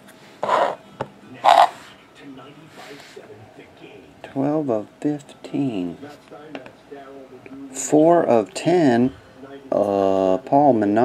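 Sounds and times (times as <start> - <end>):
cards sliding and rubbing: 0.1 - 0.8, 1.4 - 2.0.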